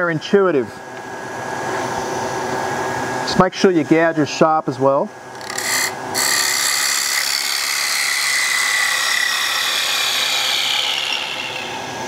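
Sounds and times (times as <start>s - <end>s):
lathe high whine: 5.3s - 12.0s.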